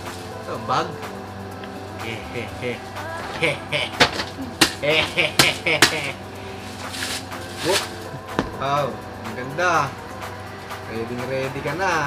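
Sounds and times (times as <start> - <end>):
bubble wrap crackling snaps: 6.7 - 8.1.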